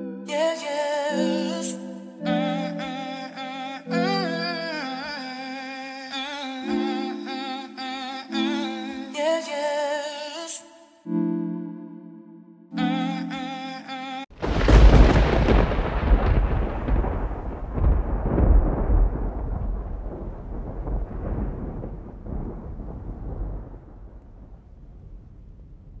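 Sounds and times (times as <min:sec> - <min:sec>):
thunder clap and rolling rumble: 0:14.4 - 0:26.0.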